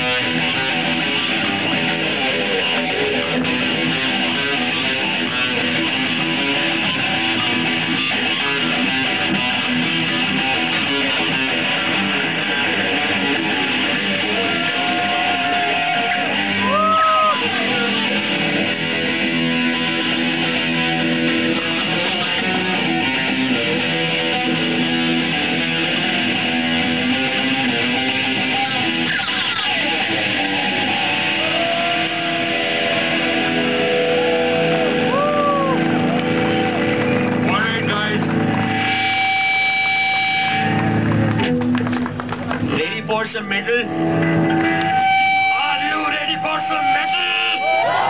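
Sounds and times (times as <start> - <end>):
held guitar note: 0.0 - 41.8, 42.6 - 48.0
rock band with distorted guitars: 0.0 - 48.0.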